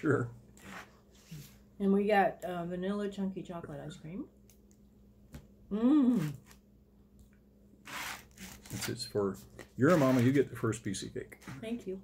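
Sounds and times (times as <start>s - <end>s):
knife scraping through cake: 9.8s - 10.4s.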